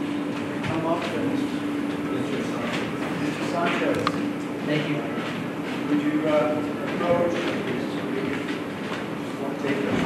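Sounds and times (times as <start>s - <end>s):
indistinct talk in reverberant room: 0.0s - 10.0s.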